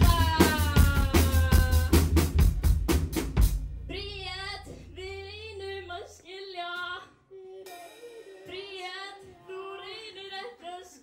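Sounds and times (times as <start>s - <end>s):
drum fill of snare and bass: 0.0s - 5.0s, 7.6s - 8.9s
low bass note ringing: 3.6s - 6.1s
woman singing held notes: 3.9s - 11.0s.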